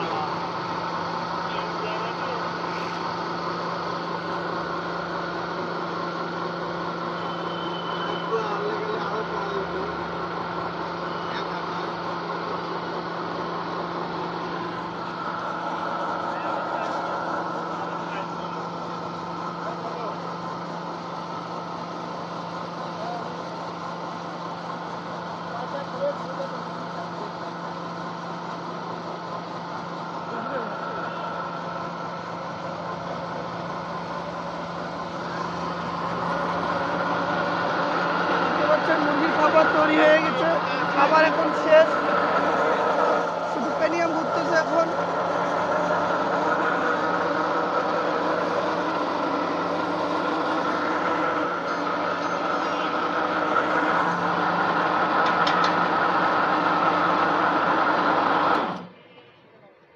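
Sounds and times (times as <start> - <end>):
pellet mill machine hum: 0.0 - 59.3.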